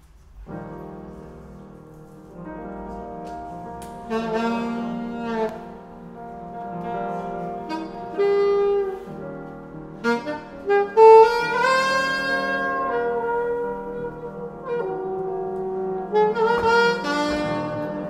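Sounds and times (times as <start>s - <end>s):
alto saxophone improvising: 2.8s - 18.0s.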